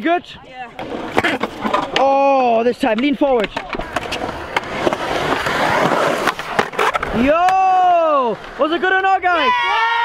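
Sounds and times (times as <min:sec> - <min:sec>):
skateboard wheels rolling on concrete: 0:00.0 - 0:10.0.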